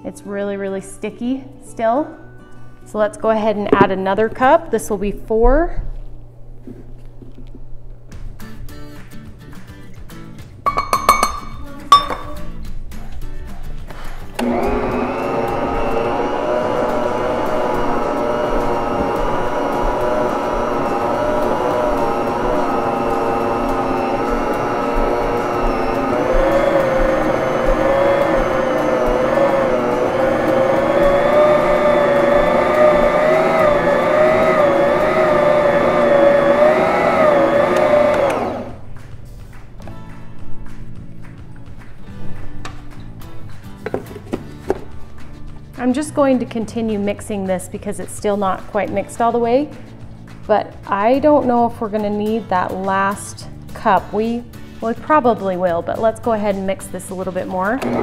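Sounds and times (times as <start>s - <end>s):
metal cup clinks: 10.7s - 12.4s
stand mixer motor whine: 14.4s - 38.8s, 57.8s - 58.0s.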